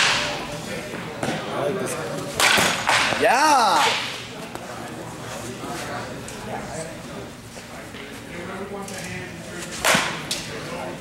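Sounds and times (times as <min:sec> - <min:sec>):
bat cracking ball: 0:02.4 - 0:03.2.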